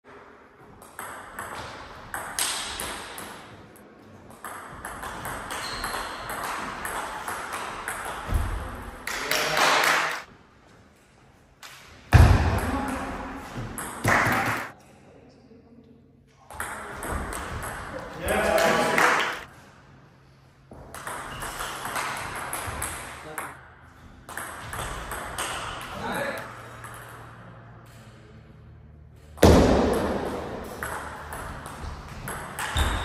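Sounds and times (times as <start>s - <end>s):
ping pong ball clicking off paddles: 4.3s - 9.2s, 20.9s - 23.6s, 24.3s - 27.4s, 30.6s - 33.0s
ball bouncing on table: 29.4s - 33.0s.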